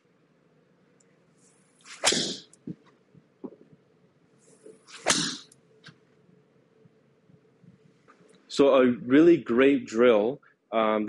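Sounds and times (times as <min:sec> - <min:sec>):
golf club swish: 0:01.4 - 0:02.9, 0:04.5 - 0:05.5.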